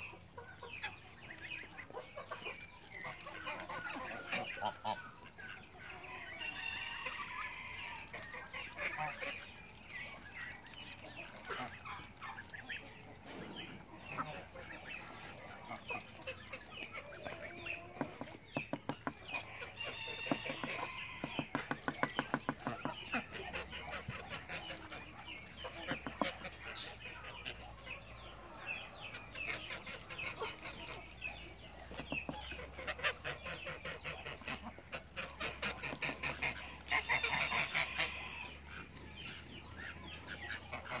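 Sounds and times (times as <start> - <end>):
poultry calling: 11.2 - 41.0.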